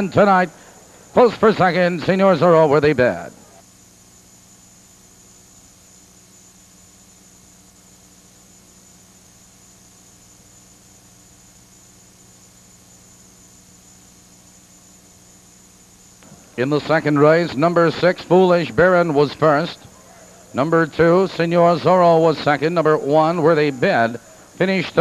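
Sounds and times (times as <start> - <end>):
faint hiss: 0.0 - 25.0
low electrical hum: 0.0 - 25.0.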